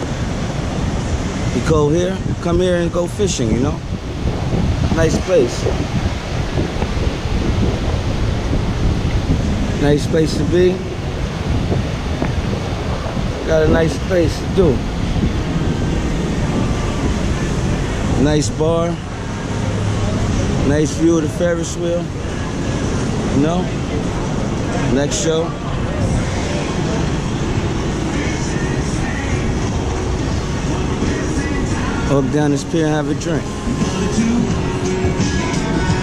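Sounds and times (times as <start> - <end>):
ocean surf breaking: 0.0 - 36.0
wind rumbling on microphone: 0.0 - 36.0
faint music: 12.7 - 36.0.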